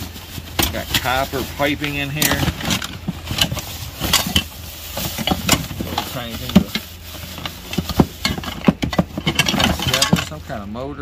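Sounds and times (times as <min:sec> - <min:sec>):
cardboard rustle: 0:00.0 - 0:10.6
plastic crinkling: 0:00.0 - 0:10.6
hardware knocking and clattering: 0:00.4 - 0:10.6.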